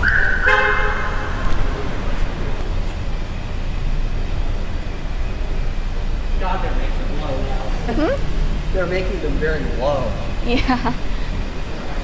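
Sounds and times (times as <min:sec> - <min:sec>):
car horn toot: 0:00.0 - 0:01.4
low rumble of car engine: 0:00.0 - 0:12.0.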